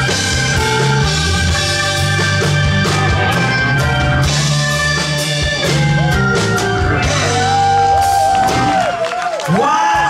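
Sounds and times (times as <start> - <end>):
blues-rock band playing: 0.0 - 9.3.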